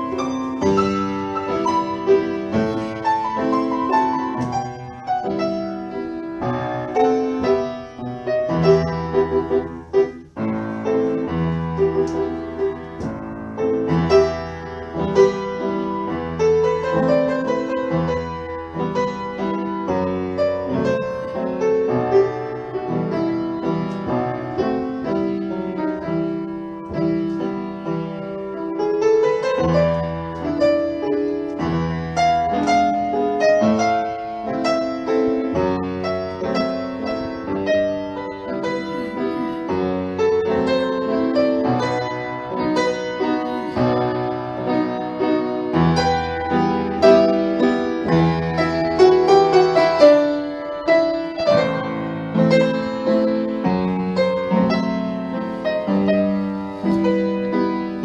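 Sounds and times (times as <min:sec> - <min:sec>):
solo piano chords and melody: 0:00.0 - 0:58.0.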